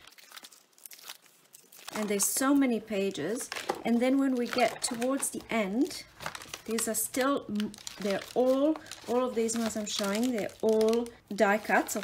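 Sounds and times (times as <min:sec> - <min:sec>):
paper pages rustling: 0:03.4 - 0:05.5, 0:06.1 - 0:12.0.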